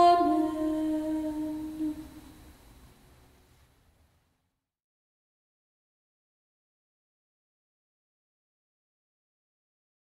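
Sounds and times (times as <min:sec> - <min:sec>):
woman singing plainchant: 0:00.0 - 0:02.4.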